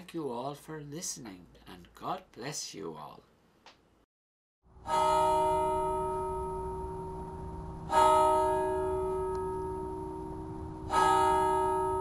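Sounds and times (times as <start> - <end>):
church bell tolling: 4.8 - 12.0.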